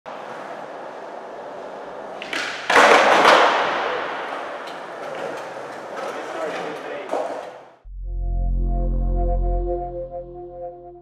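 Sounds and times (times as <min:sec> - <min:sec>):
skateboard wheels rolling on concrete: 0:00.1 - 0:07.7
skateboard clatter: 0:02.0 - 0:07.6.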